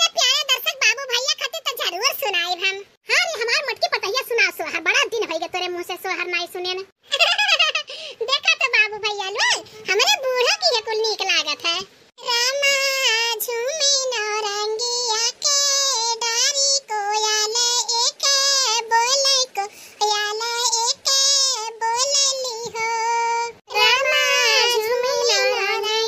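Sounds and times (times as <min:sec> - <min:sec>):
high-pitched cartoon voice singing: 0:12.2 - 0:26.0.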